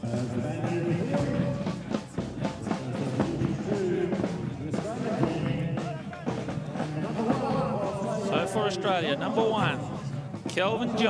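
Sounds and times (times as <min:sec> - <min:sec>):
brass instruments: 0:00.0 - 0:11.0
drum beats: 0:00.0 - 0:11.0.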